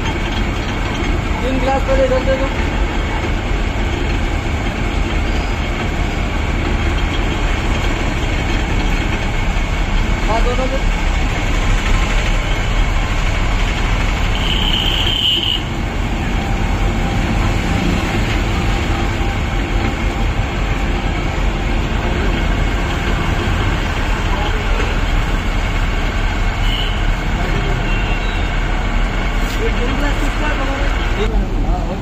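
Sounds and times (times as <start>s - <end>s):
sugarcane crusher running: 0.0s - 31.2s.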